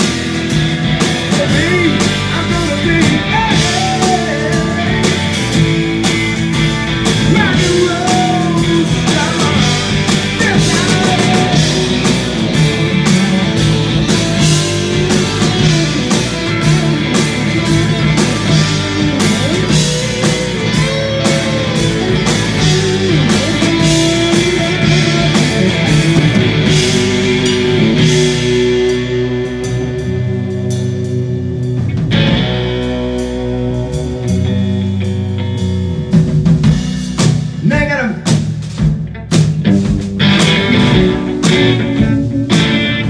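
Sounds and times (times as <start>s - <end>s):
drum kit: 0.0s - 43.0s
electric guitars: 0.0s - 43.0s.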